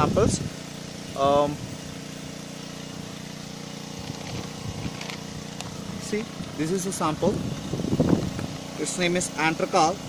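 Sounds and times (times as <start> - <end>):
engine running steadily: 0.0 - 10.0.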